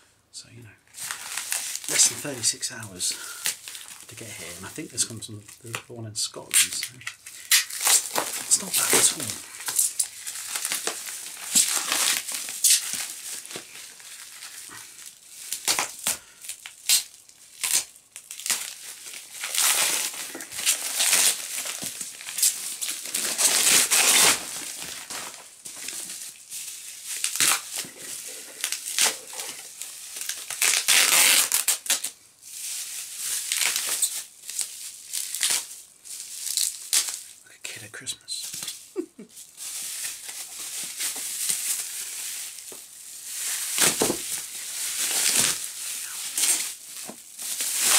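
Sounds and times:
plastic and bubble wrap crinkling: 0.5 - 37.5, 38.1 - 47.9.

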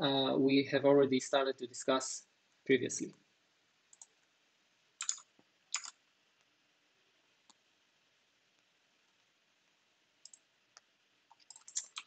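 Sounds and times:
faint keyboard clicks: 3.9 - 4.2, 5.0 - 6.0, 10.2 - 12.0.

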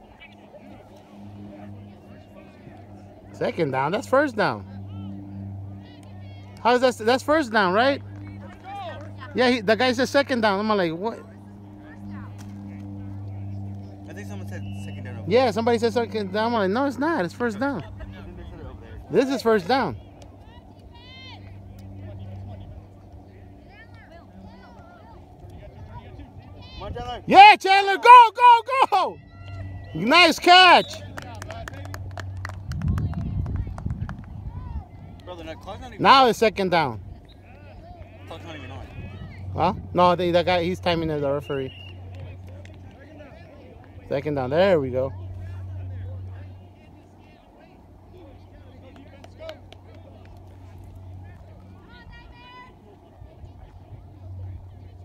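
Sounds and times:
distant voices shouting: 0.0 - 32.6
steady low hum: 0.0 - 55.0.

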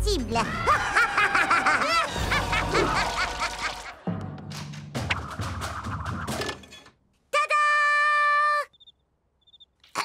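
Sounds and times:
faint high chirps: 8.7 - 9.8.

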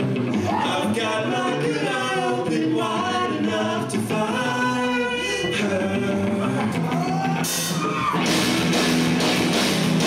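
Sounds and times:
rock band playing live: 0.0 - 10.0
man singing: 0.4 - 7.6.

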